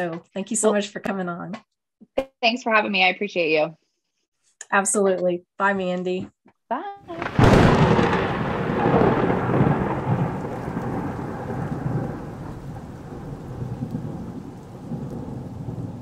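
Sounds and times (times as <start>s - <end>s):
rain: 7.1s - 16.0s
rolling thunder: 7.1s - 16.0s.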